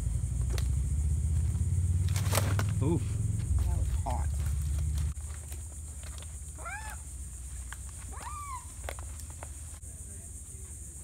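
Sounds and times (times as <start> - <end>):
animal calls: 6.4 - 9.2.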